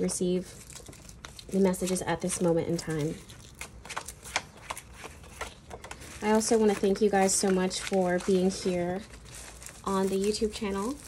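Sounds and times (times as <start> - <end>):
cards being shuffled: 0.7 - 11.0.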